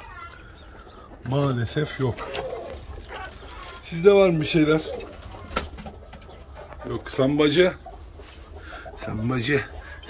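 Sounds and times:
chickens clucking softly: 0:00.0 - 0:10.0.

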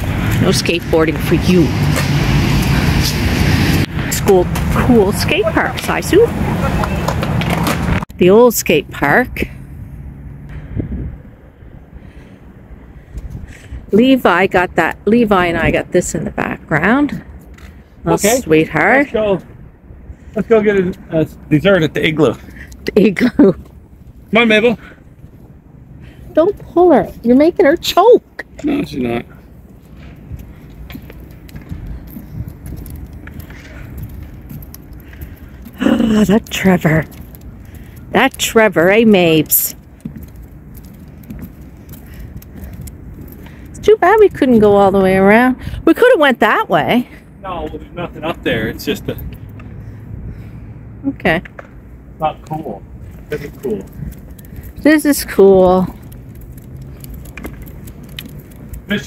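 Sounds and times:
wind buffeting microphone: 0:08.8 - 0:17.4, 0:29.4 - 0:46.1, 0:52.8 - 0:59.0
footsteps on wooden bridge: 0:39.8 - 0:43.5.

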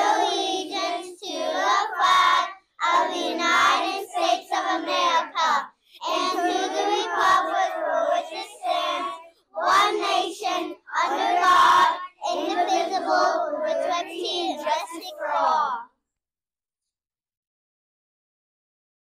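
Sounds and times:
children reciting in unison: 0:00.0 - 0:15.8.

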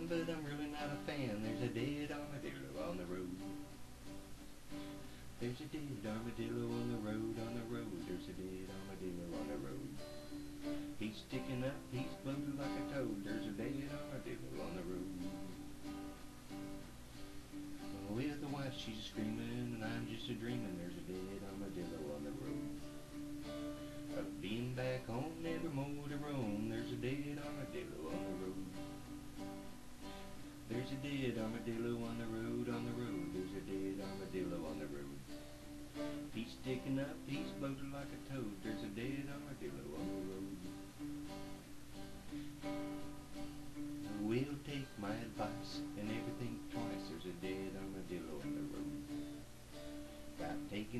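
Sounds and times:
acoustic guitar strumming: 0:00.0 - 0:50.9.

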